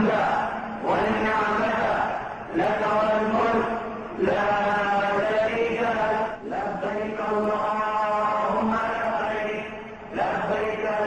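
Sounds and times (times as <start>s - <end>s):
voices chanting devotional chant: 0.0s - 11.0s.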